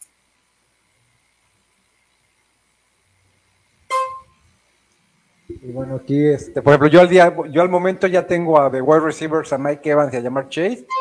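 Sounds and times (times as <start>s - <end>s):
buzzy horn-like beep: 3.9s - 4.4s.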